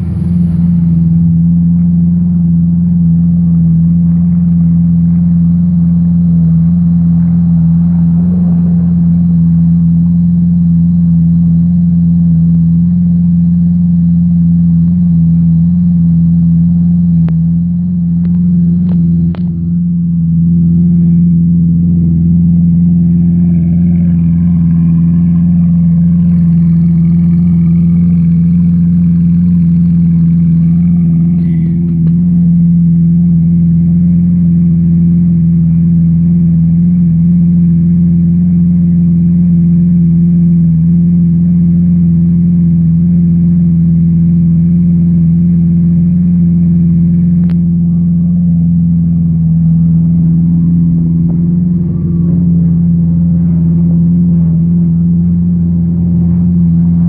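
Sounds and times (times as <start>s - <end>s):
car engine idling: 0.0s - 57.0s.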